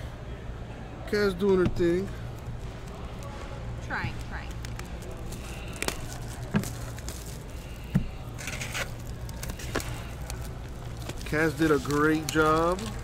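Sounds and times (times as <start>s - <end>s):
plastic crinkling: 1.8s - 13.0s
shrink wrap tearing: 2.3s - 13.0s.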